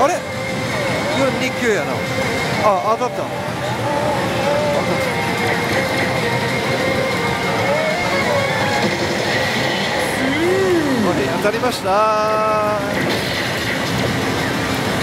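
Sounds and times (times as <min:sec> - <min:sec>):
slot machines electronic tones: 0:00.0 - 0:11.9
recorded voices: 0:00.8 - 0:02.0, 0:02.6 - 0:06.4, 0:09.7 - 0:13.1.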